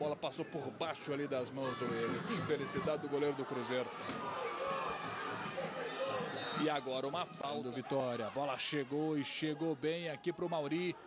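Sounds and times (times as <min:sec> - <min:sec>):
stadium crowd noise hiss: 0:00.0 - 0:11.0.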